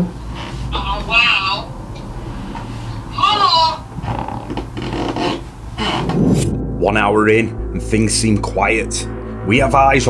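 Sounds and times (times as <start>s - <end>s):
rubbing and scraping: 4.0s - 6.6s.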